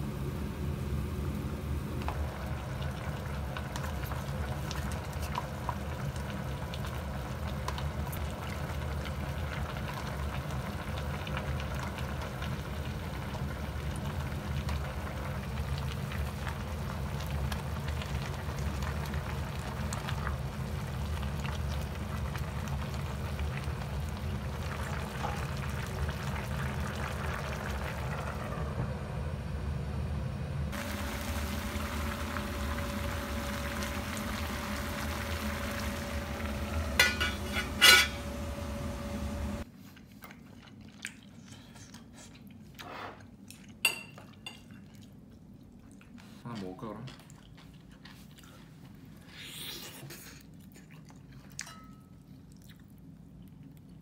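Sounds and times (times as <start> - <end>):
gas burner rumble: 0.0 - 39.7
pot bubbling: 0.8 - 29.0, 30.7 - 41.4.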